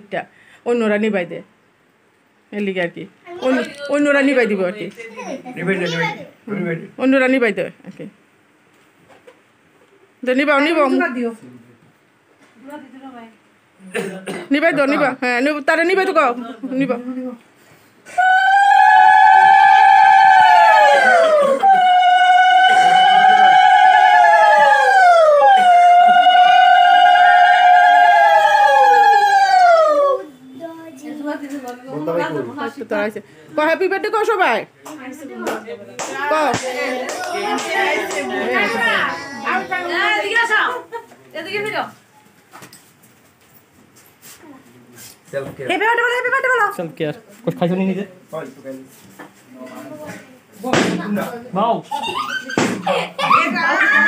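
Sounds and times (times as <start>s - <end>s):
dog howling: 18.2s - 30.3s
people's voices: 35.4s - 41.1s
loud slam: 50.6s - 51.1s, 52.6s - 52.9s.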